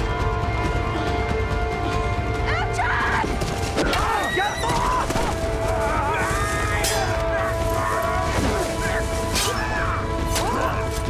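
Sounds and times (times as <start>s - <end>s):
dramatic film score: 0.0s - 11.0s
people shouting and crying: 1.8s - 11.0s.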